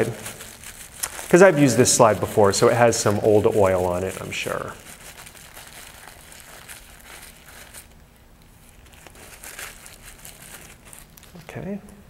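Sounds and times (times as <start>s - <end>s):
tissue rubbing on glass slide: 0.0s - 11.2s.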